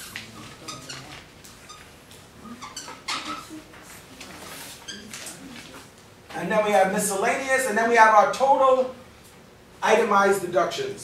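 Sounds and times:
marker squeaking on whiteboard: 0.0s - 5.9s.

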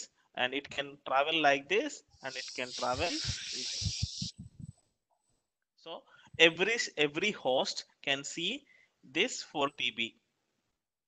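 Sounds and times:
steady hiss: 2.2s - 4.6s.

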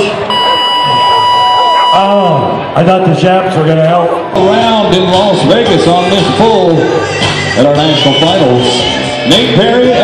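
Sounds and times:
electronic timing buzzer: 0.3s - 2.2s.

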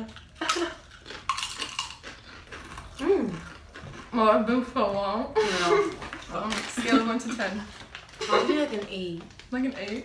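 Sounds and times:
crunching tortilla chips: 0.1s - 4.2s.

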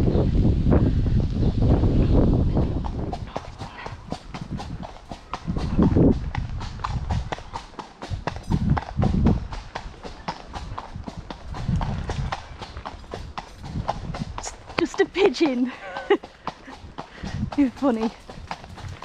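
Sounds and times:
wind noise whooshes: 0.0s - 15.3s, 16.8s - 19.0s
horse hooves on gravel: 2.8s - 19.0s.

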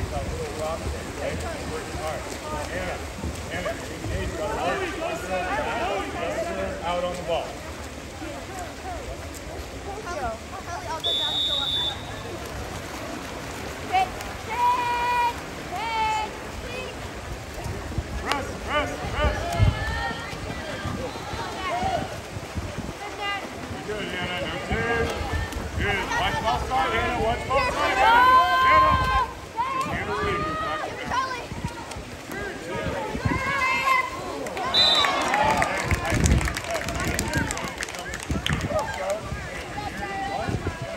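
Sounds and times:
water splashing from swimmers: 0.0s - 40.9s
referee's whistle blast: 11.0s - 12.3s, 34.7s - 35.2s
people shouting: 13.9s - 16.9s, 25.2s - 31.4s, 32.4s - 35.8s.

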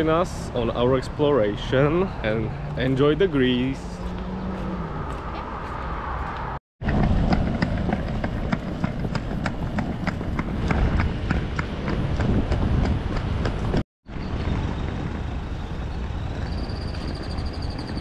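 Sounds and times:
road traffic passing: 0.0s - 18.0s
suitcase wheels rumbling on pavement: 6.8s - 18.0s.

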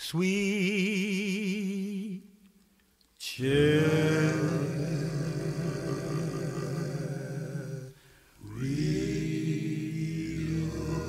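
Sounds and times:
male a cappella group singing: 3.2s - 11.0s.

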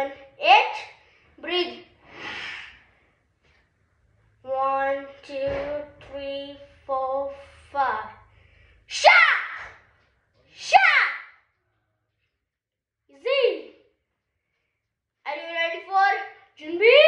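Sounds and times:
boy breathing out sharply: 2.0s - 3.2s, 8.2s - 8.9s
boy shouting: 8.9s - 9.8s, 10.6s - 11.4s, 13.1s - 13.8s.

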